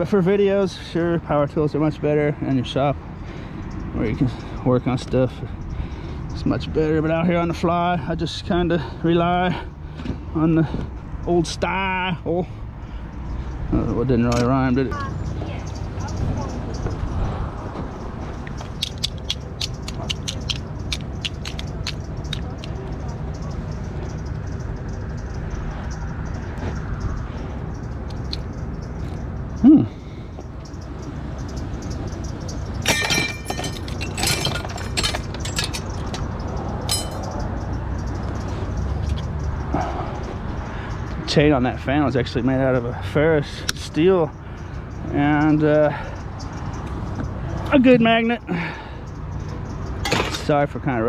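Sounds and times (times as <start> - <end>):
metal chain clinking and rattling: 31.5 - 39.6.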